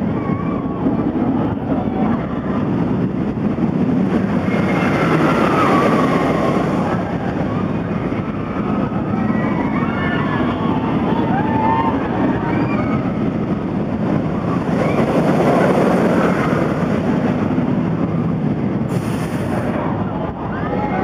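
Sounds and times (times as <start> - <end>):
roller coaster roaring: 0.0 - 21.0.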